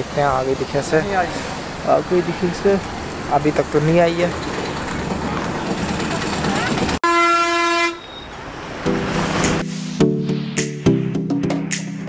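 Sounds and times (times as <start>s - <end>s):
street traffic noise: 0.0s - 10.0s
vehicle horn steady note: 7.0s - 8.3s.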